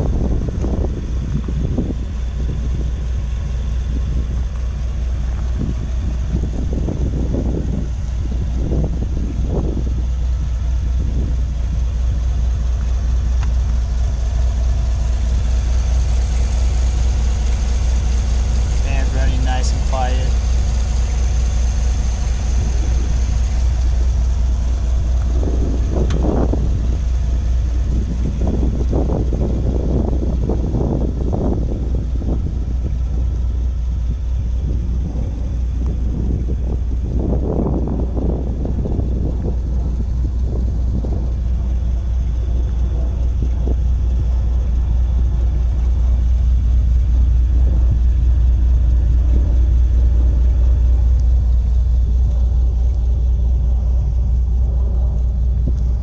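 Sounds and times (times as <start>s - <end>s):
engine idling: 0.0s - 56.0s
wind gusts on microphone: 0.0s - 56.0s.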